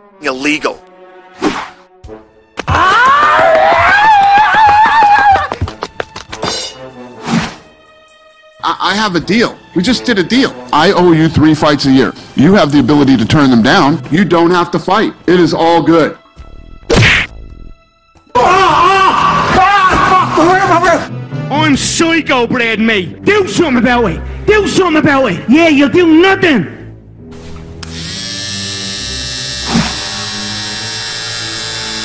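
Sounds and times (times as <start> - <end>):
faint background music: 5.8 - 17.2, 17.9 - 29.5
cartoon body-slam whack: 16.9 - 17.4
electric hair clippers buzzing: 27.8 - 32.0.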